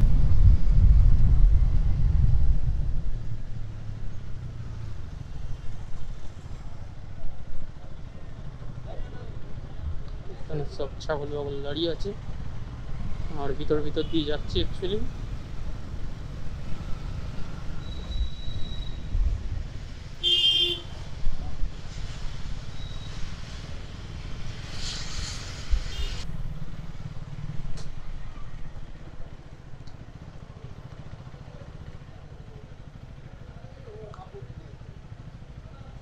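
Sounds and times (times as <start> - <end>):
road noise: 0.0 - 36.0
burst of hiss: 20.8 - 27.1
motorcycle engine running: 25.9 - 36.0.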